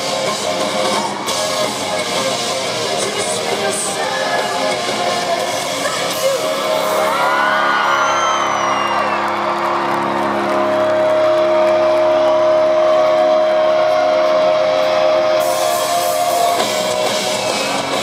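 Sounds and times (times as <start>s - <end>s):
live rock band: 0.0s - 18.0s
ringing electric guitar chords: 0.0s - 18.0s
drums playing: 15.4s - 18.0s.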